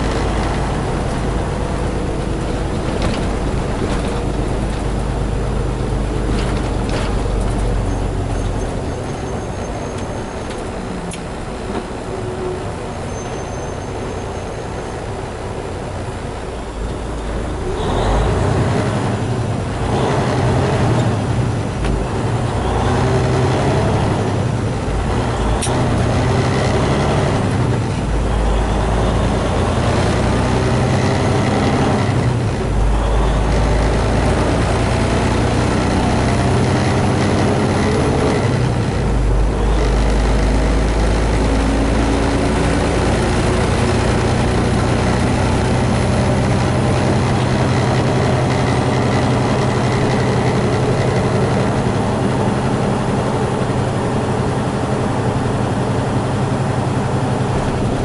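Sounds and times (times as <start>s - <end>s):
road noise: 0.0s - 58.0s
truck diesel engine shifting gears: 0.0s - 58.0s.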